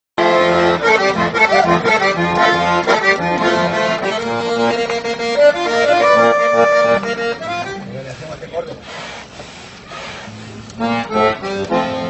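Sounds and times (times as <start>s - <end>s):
accordion playing folk tune: 0.2s - 12.0s.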